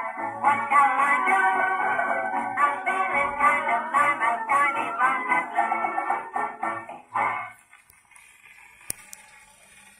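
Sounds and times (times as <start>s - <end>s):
record surface hiss: 0.0s - 9.9s.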